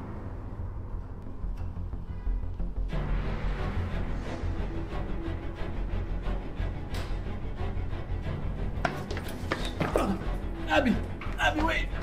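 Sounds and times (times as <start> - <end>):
dark horror score drone: 0.0 - 8.7.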